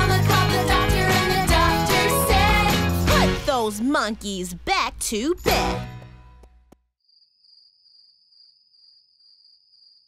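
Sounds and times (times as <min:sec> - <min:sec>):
children's song: 0:00.0 - 0:06.0
crickets chirping: 0:07.0 - 0:10.0.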